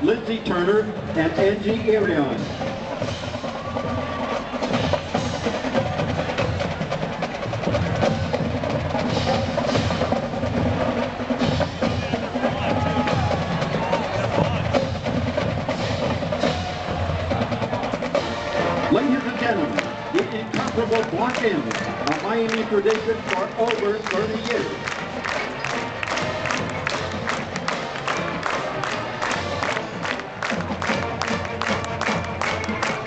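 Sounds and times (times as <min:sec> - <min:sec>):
marching drumline cadence: 0:00.0 - 0:33.0
stadium crowd talking: 0:00.0 - 0:33.0.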